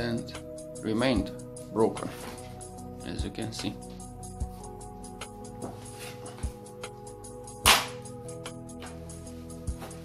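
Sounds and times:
background music: 0.0 - 10.0
foam sheet snapping: 7.6 - 8.0.

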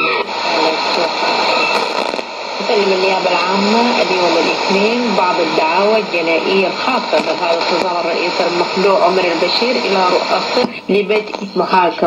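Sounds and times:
faint radio voice: 0.0 - 1.8
static hiss: 0.0 - 12.0.

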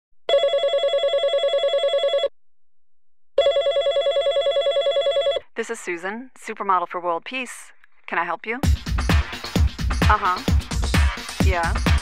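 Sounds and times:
telephone ringing with trill: 0.3 - 2.3, 3.4 - 5.5.

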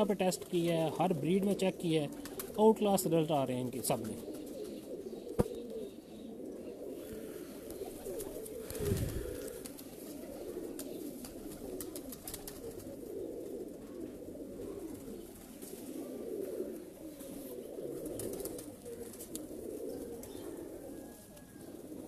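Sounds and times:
pigeons cooing: 0.0 - 22.0.

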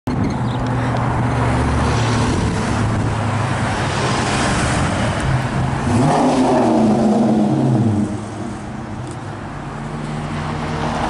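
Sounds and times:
road noise: 0.1 - 11.0.

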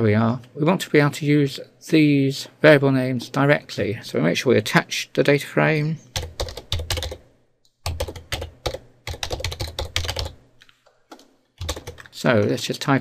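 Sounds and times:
typing on computer keyboard: 6.2 - 7.2, 7.9 - 10.4, 11.1 - 12.1.

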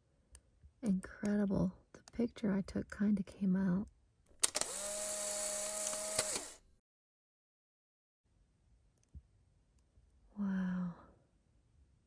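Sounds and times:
motor click: 4.3 - 6.7
small electric motor whirring: 4.4 - 6.7.

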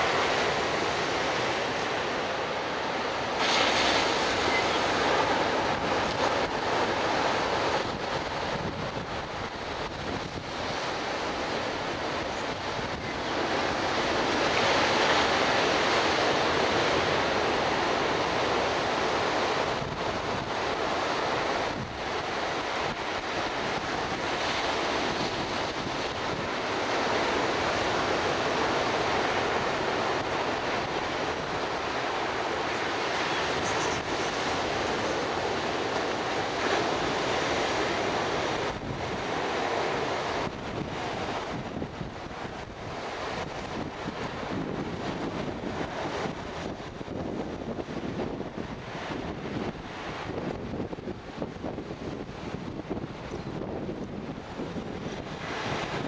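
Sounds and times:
surf breaking on a beach: 0.0 - 56.0
wind on microphone: 0.0 - 56.0.

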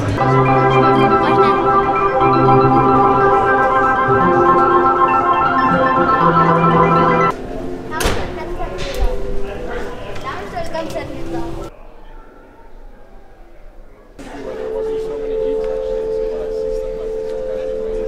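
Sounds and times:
organ-like synthesizer chords: 0.0 - 7.9, 14.2 - 18.0.

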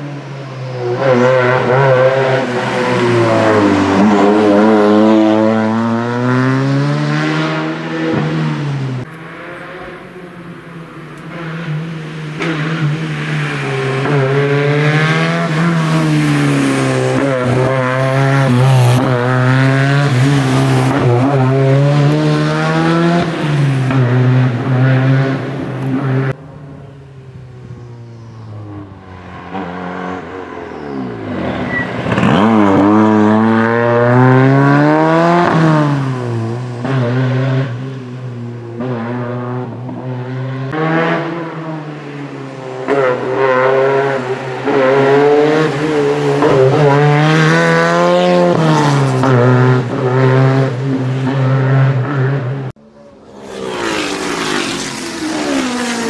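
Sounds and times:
rally car engine revving: 0.0 - 26.4, 27.8 - 56.0.

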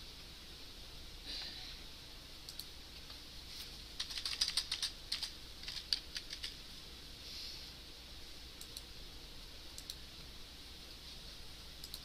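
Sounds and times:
typing on computer keyboard: 4.0 - 6.6.

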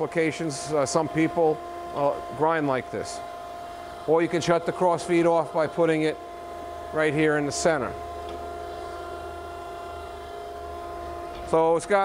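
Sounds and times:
surface grinder whining: 0.6 - 12.0.

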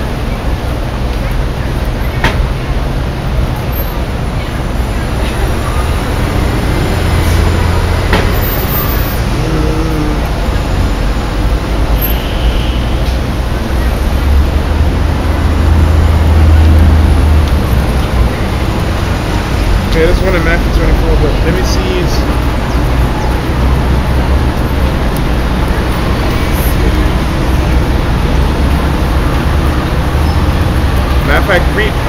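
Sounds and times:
large vehicle rumbling by: 0.0 - 32.0
passing vehicles: 0.0 - 32.0.

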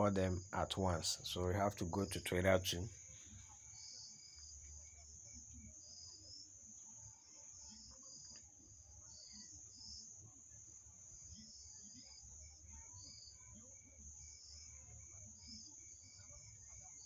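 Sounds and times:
steady high-pitched whine: 0.0 - 17.0.

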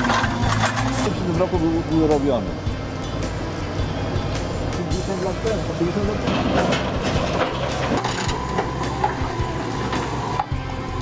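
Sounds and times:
excavator diesel engine running: 0.0 - 11.0.

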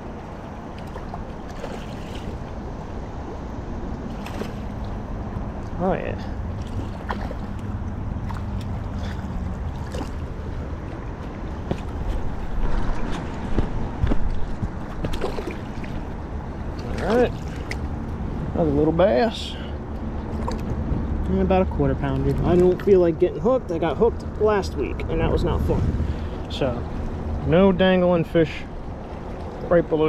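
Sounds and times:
river water flowing: 0.0 - 30.0.

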